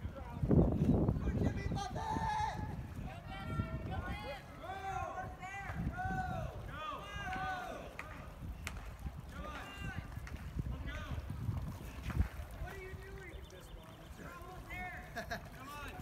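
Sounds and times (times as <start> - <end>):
wind rumbling on microphone: 0.0 - 16.0.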